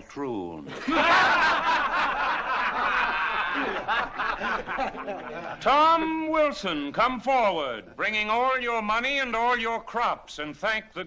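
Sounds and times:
crowd laughing: 0.7 - 5.6.

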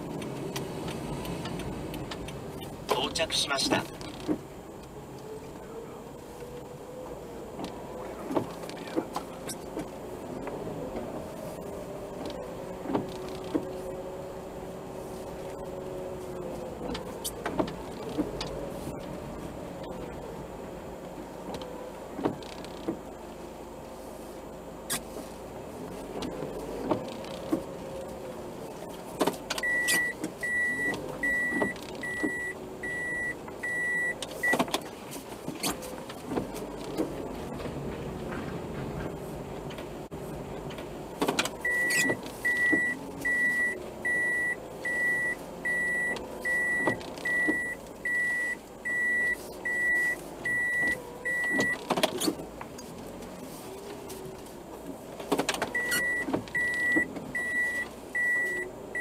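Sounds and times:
car engine idling: 0.0 - 59.0
high warning beeps: 29.6 - 34.6, 41.6 - 51.8, 55.8 - 59.0.

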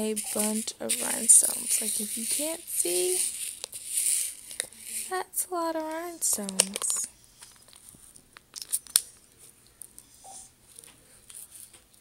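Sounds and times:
rhinestones rattling in plastic container: 0.0 - 7.1.

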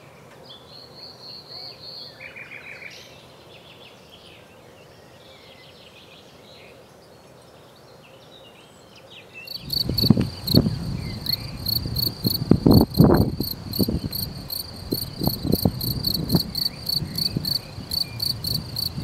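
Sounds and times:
cricket chirping: 9.5 - 19.0
low thumps: 9.6 - 19.0.

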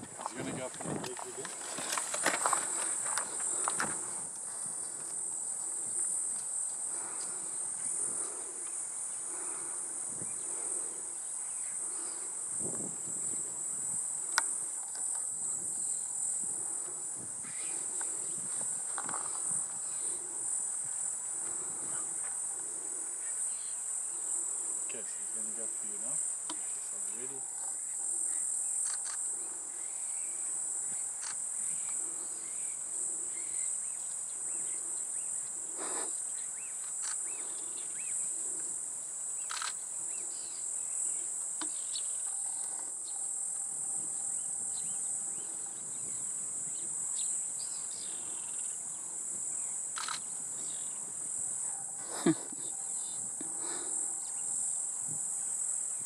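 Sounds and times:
insects buzzing: 0.0 - 56.0.

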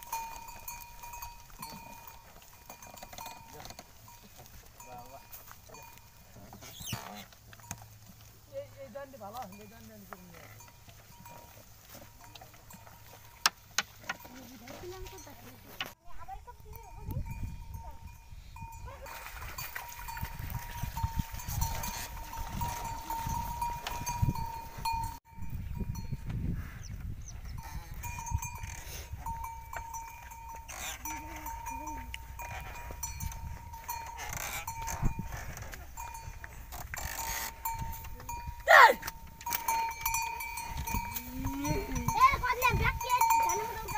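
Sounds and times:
neck bell ringing: 0.0 - 6.3, 16.2 - 26.2, 27.4 - 43.9
hooves on muddy track: 0.0 - 43.9
cart rumbling: 20.5 - 43.9.

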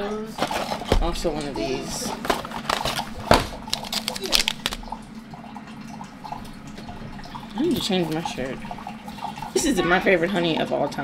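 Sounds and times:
paper packets rustling: 2.0 - 4.9.

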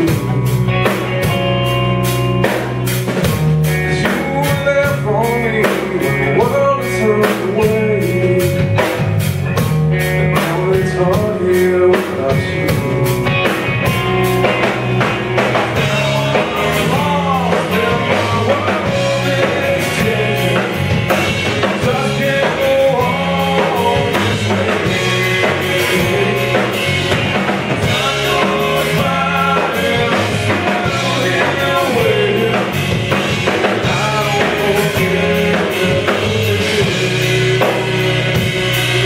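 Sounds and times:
man singing lead: 0.0 - 1.0, 3.6 - 9.2, 10.0 - 39.0
drum kit steady beat: 0.0 - 39.0
electric bass: 0.0 - 39.0
guitar: 0.0 - 39.0.

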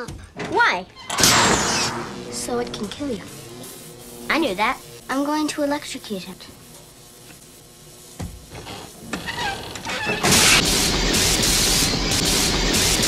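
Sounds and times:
electric buzzing and crackling: 1.1 - 13.0.

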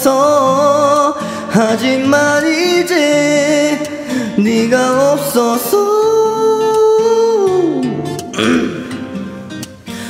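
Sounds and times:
man singing a ballad: 0.0 - 9.2
backing track with guitar: 0.0 - 10.0.

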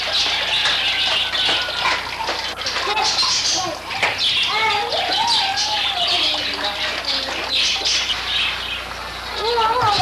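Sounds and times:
fountain water trickling: 0.0 - 9.8
small birds chirping: 0.0 - 10.0.

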